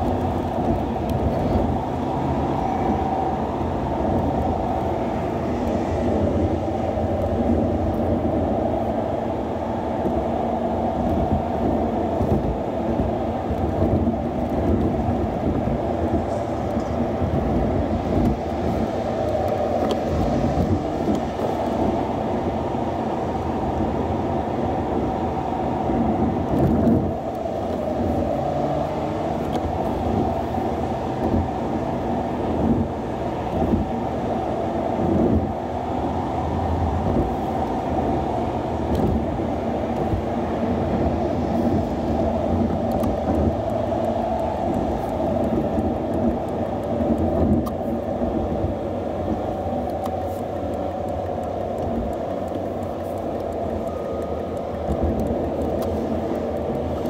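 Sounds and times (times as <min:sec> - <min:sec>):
car driving rumble: 0:00.0 - 0:57.0
low thumps from road bumps: 0:25.8 - 0:34.2, 0:35.0 - 0:36.1, 0:37.0 - 0:50.7.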